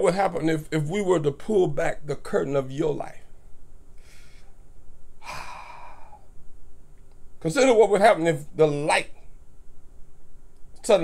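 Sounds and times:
man breathing and sighing: 0:05.2 - 0:06.4.

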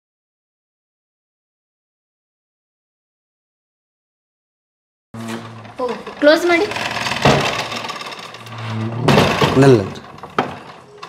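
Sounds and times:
low door groan: 0:05.2 - 0:11.0
wooden doors scraping and rattling: 0:05.2 - 0:11.0.

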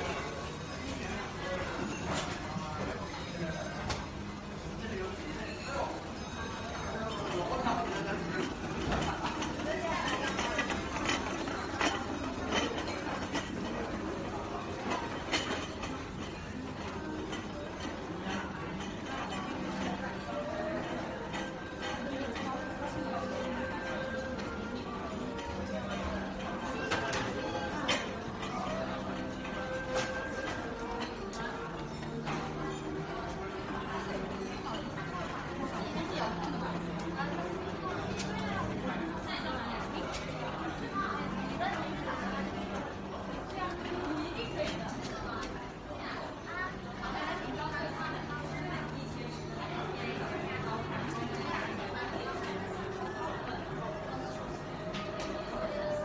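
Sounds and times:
indistinct chatter of voices: 0:00.0 - 0:56.0.

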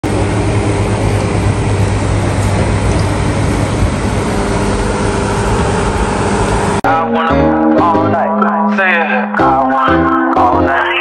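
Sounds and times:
low hum: 0:00.0 - 0:06.8.

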